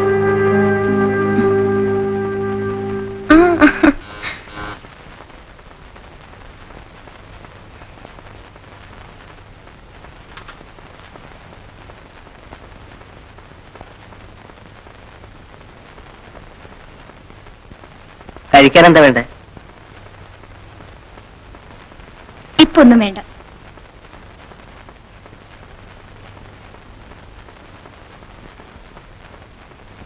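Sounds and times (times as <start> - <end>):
low hum: 0.0 - 4.8
film soundtrack hiss: 0.0 - 30.0.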